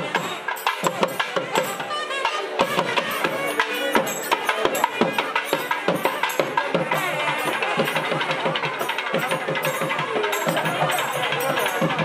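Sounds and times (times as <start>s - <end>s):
fast even drumbeats: 0.0s - 12.0s.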